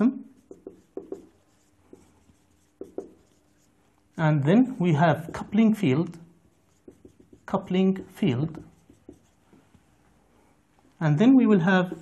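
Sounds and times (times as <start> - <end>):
marker tapping on whiteboard: 0.4 - 3.4, 5.2 - 5.7, 6.7 - 7.8, 8.6 - 9.6.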